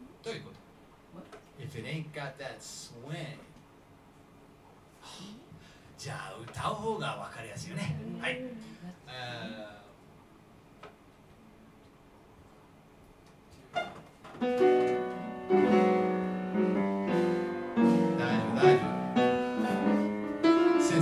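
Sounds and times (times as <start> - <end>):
jazz piano chords: 13.7 - 21.0.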